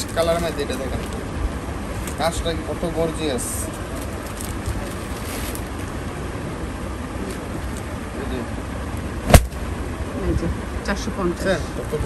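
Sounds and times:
low background rumble: 0.0s - 12.0s
loud sharp bang: 9.2s - 9.6s.

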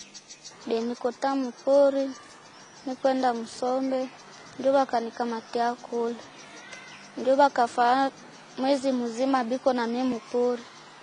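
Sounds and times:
woman speaking: 0.6s - 2.2s, 2.9s - 6.3s, 7.2s - 10.6s.

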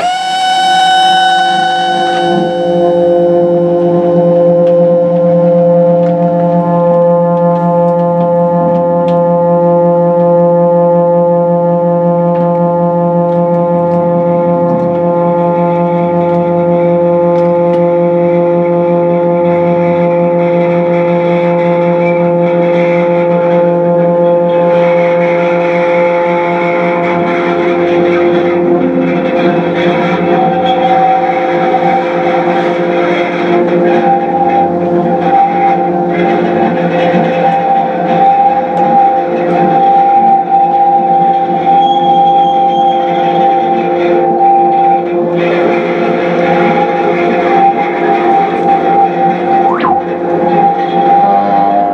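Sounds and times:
high steady tone: 0.0s - 8.6s, 49.6s - 50.4s
electric guitar noise drone: 0.0s - 41.3s, 43.8s - 51.9s.

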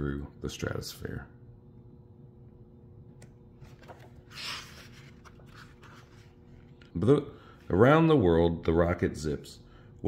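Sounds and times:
low steady hum: 0.0s - 10.0s
book page turning: 3.6s - 6.9s.

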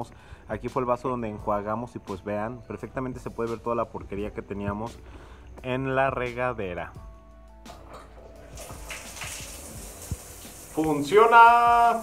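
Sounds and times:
faint music: 0.0s - 12.0s
shower head spraying water: 8.4s - 12.0s.

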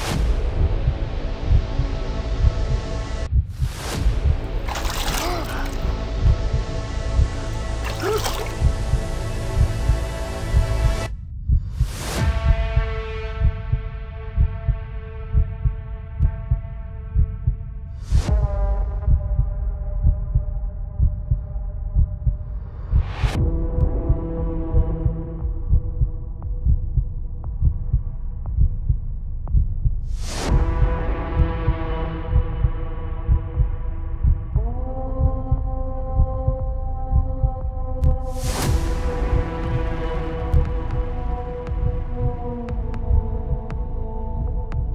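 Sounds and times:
heartbeat thumps: 0.1s - 44.9s
heartbeat double thump: 18.2s - 31.7s, 38.0s - 44.9s.

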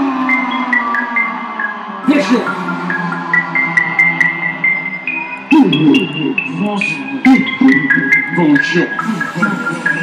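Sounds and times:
loud voices: 0.0s - 10.0s
synthesizer slow melody: 0.0s - 10.0s.

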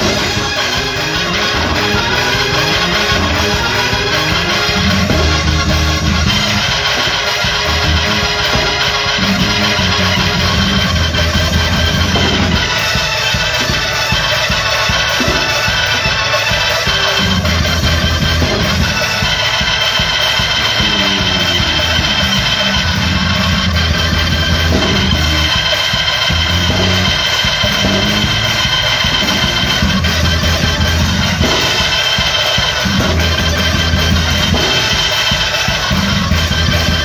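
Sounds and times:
deep repeating bass notes: 0.0s - 16.3s, 16.9s - 19.6s, 20.3s - 31.9s, 32.8s - 35.1s, 35.8s - 37.0s
drum kit steady beat: 0.0s - 37.0s.

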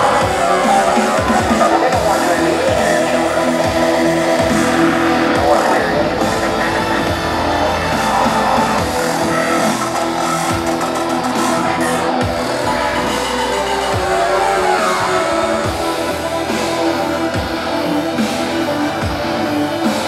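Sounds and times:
deep bass sweeps: 0.0s - 20.0s
live electronic rock band: 0.0s - 20.0s.

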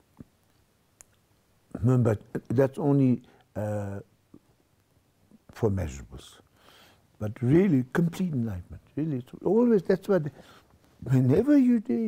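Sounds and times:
man speaking: 1.7s - 4.1s, 5.5s - 6.4s, 7.2s - 12.0s.

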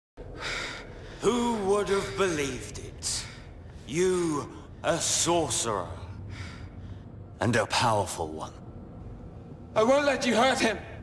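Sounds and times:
man speaking: 1.2s - 6.2s.

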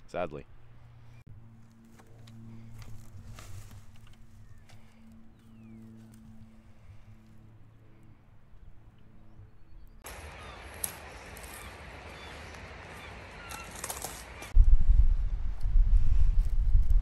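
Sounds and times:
low engine hum: 0.5s - 17.0s
dry grass rustling: 0.7s - 7.6s, 10.0s - 14.6s.

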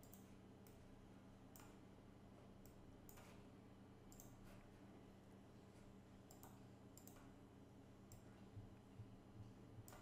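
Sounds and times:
faint computer mouse clicks: 0.0s - 0.8s, 1.5s - 1.8s, 2.6s - 3.4s, 4.1s - 4.6s, 6.3s - 7.4s
low electrical hum: 0.0s - 10.0s.

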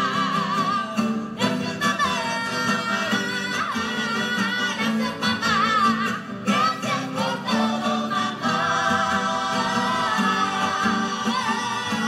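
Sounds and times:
acoustic guitars: 0.0s - 12.0s
woman singing lead: 0.0s - 12.0s
youth choir singing in unison: 6.5s - 12.0s.

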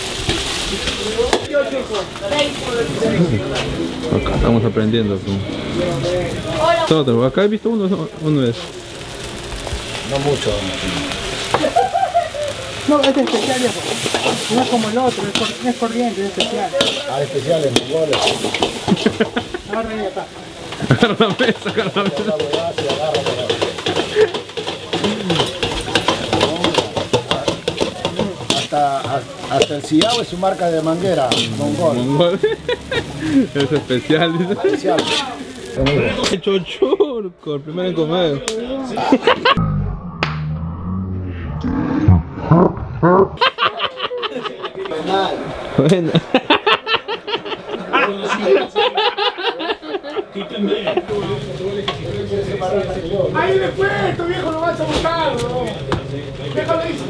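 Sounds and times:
gas flame rumble: 0.0s - 35.0s
food sizzling: 0.0s - 36.8s, 43.4s - 57.0s
voices talking: 0.6s - 39.6s
laughter: 11.5s - 12.7s, 18.8s - 19.9s, 20.8s - 22.4s, 32.3s - 33.7s, 39.0s - 39.6s, 43.0s - 45.2s, 46.1s - 51.1s
metal spatula scraping a wok: 13.0s - 19.5s, 20.7s - 32.0s, 34.8s - 35.7s
utensil clacking against pan: 20.7s - 30.3s.

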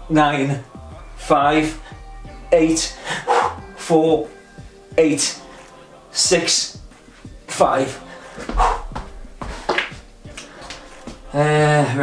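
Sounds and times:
man breathing hard: 1.7s - 2.2s, 2.9s - 3.9s, 7.9s - 9.8s
loud exhales: 3.0s - 3.6s.

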